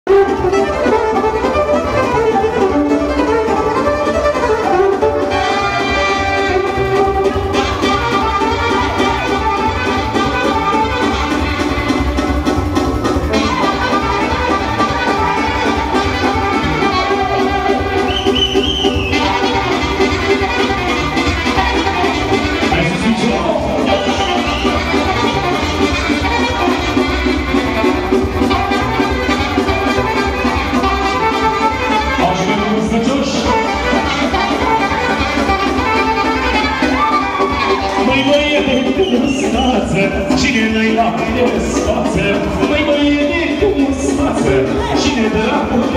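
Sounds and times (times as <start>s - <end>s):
folk dance music: 0.0s - 45.9s
violin melody: 0.1s - 18.2s, 19.0s - 45.9s.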